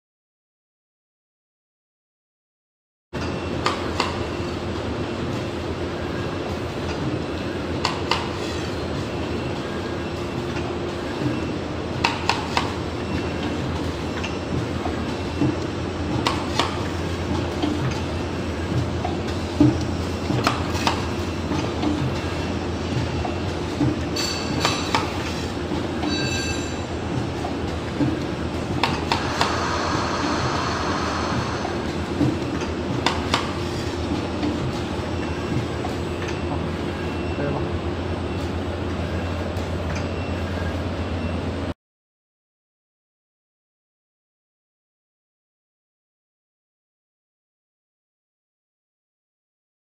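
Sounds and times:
printing machine hum: 0:03.2 - 0:41.8
pneumatic machine clack: 0:23.2 - 0:34.9.

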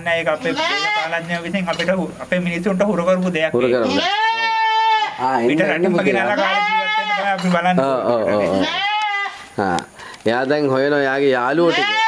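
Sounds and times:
goat bleating: 0:00.3 - 0:01.5, 0:03.7 - 0:09.7, 0:11.5 - 0:12.0.

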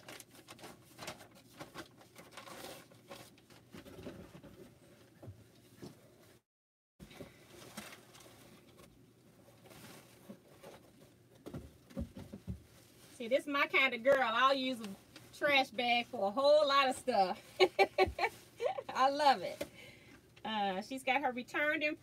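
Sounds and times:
paper and plastic bag crinkling: 0:00.0 - 0:04.4, 0:07.3 - 0:11.3.

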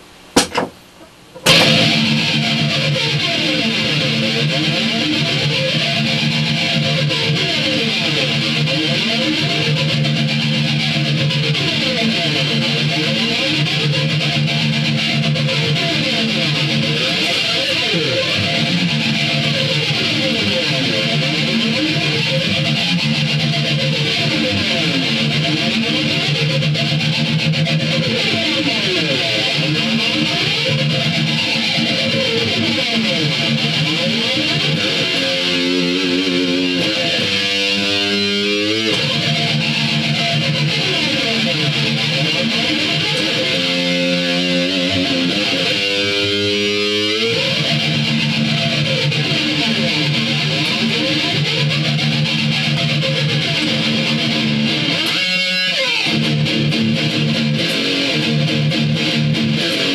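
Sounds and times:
heavy metal electric guitar riffs: 0:01.4 - 0:59.9.

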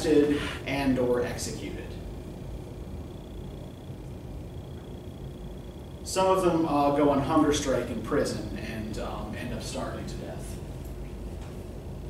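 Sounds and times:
faint high whine: 0:00.0 - 0:12.0
low hum: 0:00.0 - 0:12.0.

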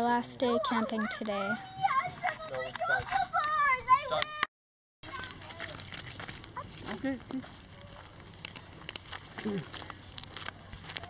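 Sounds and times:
footsteps on gravel: 0:05.0 - 0:11.0.

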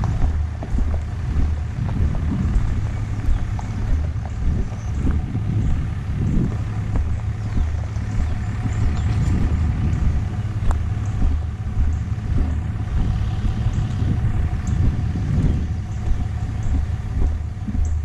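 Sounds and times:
faint steady whine: 0:00.0 - 0:18.0
vehicle engine rumble on dirt track: 0:00.0 - 0:18.0.

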